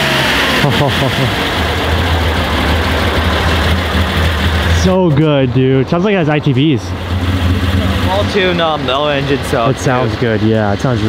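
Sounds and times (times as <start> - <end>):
loud car engine idling: 0.0 - 11.0.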